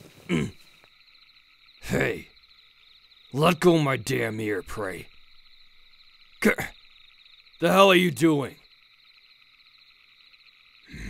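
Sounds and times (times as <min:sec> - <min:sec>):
chorus of frogs: 0:00.0 - 0:11.0.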